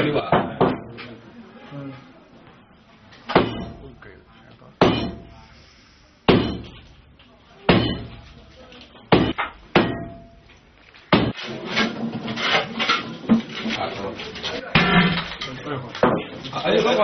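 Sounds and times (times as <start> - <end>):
sledgehammer striking ceramic tiles: 3.3 - 4.0, 4.8 - 5.4, 6.3 - 7.0, 7.7 - 8.3, 9.1 - 13.6, 14.6 - 16.2
people talking: 13.7 - 17.0.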